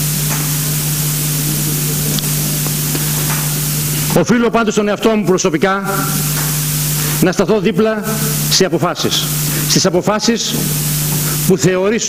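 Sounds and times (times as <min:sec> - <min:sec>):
low hum: 0:00.0 - 0:11.7
loud electronic hiss: 0:00.0 - 0:12.0.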